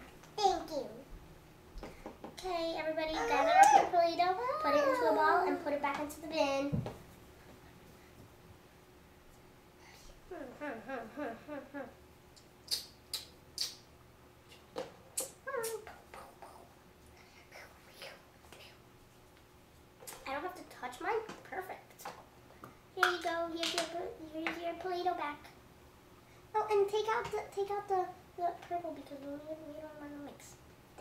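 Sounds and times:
girl making sing-song sounds: 3.1 - 5.6.

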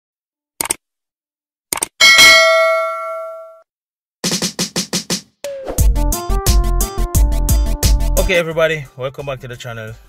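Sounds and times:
bright bell ding: 2.0 - 3.6.

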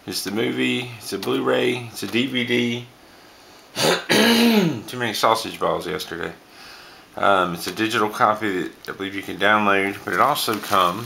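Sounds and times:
man coughing: 3.8 - 4.8.

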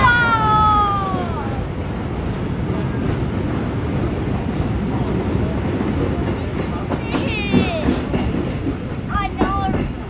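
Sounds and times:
train wheels rumbling on rail: 0.0 - 10.0.

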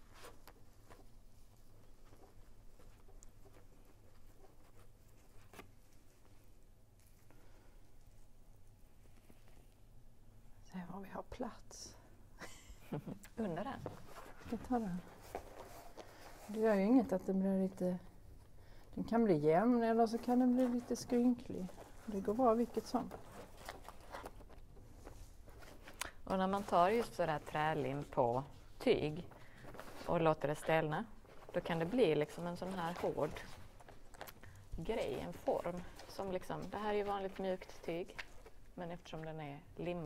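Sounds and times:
cloth rustling on cardboard: 0.0 - 9.9, 13.4 - 18.5, 19.1 - 40.0
low room hum: 0.0 - 40.0.

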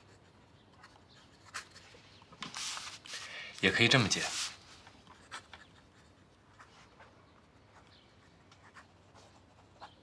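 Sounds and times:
pen scratching on paper: 0.0 - 3.1, 4.2 - 10.0.

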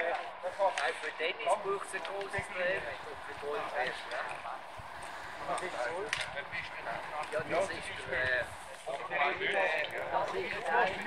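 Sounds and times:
men's voices chattering: 0.0 - 11.0.

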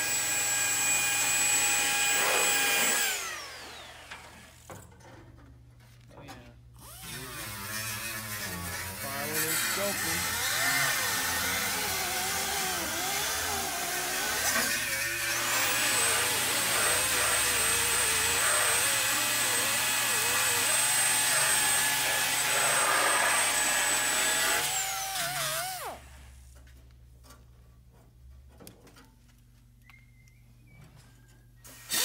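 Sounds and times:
die grinder grinding steel: 0.0 - 4.6, 6.8 - 26.1.

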